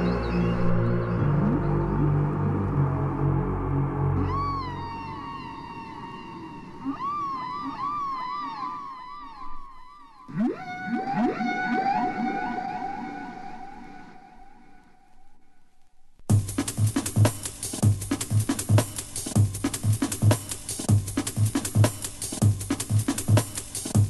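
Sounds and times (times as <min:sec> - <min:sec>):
low sustained synth pad: 0:00.0 - 0:08.4
upward synth glides: 0:00.0 - 0:14.8
swooping synth tones: 0:00.0 - 0:15.6.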